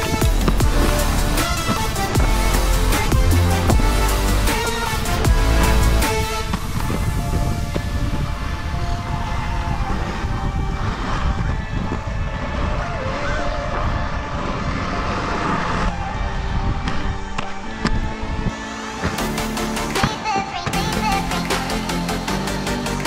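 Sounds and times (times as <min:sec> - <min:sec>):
skate wheels rolling on concrete: 0:00.0 - 0:21.8
background music: 0:00.0 - 0:23.0.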